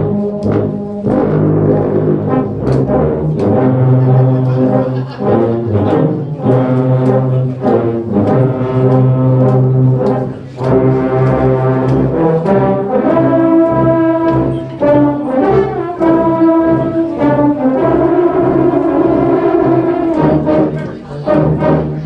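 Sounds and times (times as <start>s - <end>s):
tubas and euphoniums playing carol: 0.0s - 22.0s.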